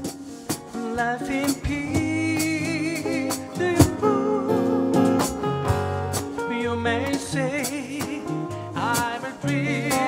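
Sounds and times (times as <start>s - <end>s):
drums keeping a beat: 0.0s - 10.0s
strummed acoustic guitars: 0.0s - 10.0s
person singing: 0.7s - 5.4s, 6.3s - 10.0s.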